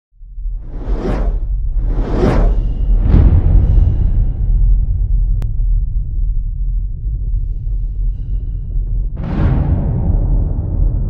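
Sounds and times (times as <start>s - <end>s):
steady deep rumble: 0.2s - 11.0s
whooshes: 0.5s - 5.4s.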